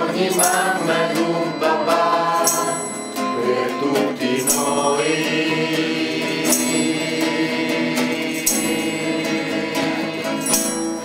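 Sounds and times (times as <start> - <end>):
men singing in unison: 0.0 - 11.0.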